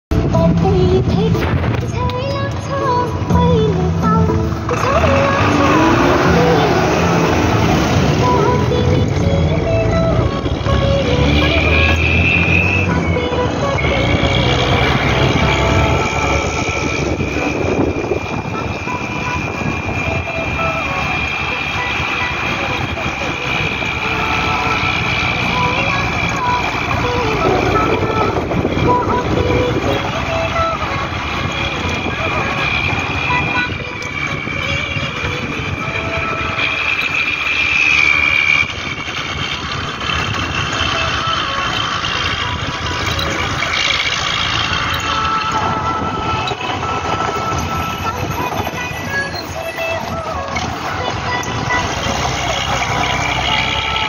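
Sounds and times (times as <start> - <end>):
bus engine and road noise: 0.0 - 54.0.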